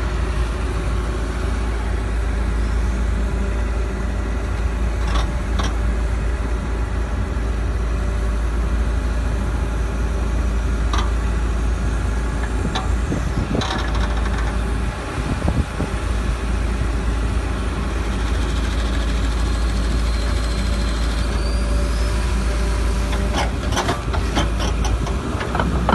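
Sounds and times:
excavator diesel engine running: 0.0s - 25.9s.

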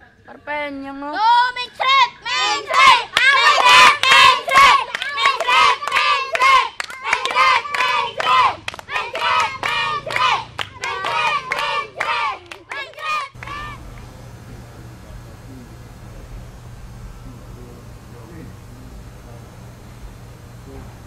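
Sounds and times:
steady low hum: 1.3s - 21.0s
hands clapping: 2.7s - 14.2s.

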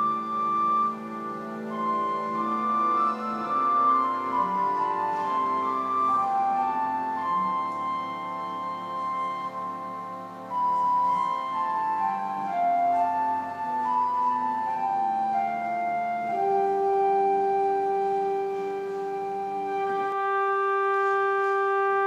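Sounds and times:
pipe organ playing: 0.0s - 22.0s.

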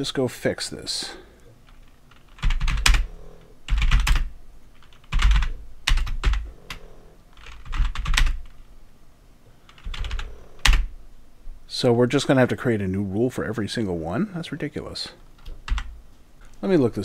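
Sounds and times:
computer keyboard typing: 1.7s - 3.1s, 3.7s - 8.6s, 9.6s - 10.9s, 15.4s - 15.9s.

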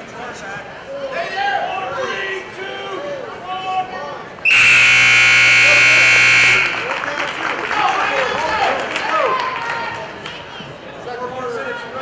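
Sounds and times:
scoreboard buzzer long tone: 4.5s - 6.9s.

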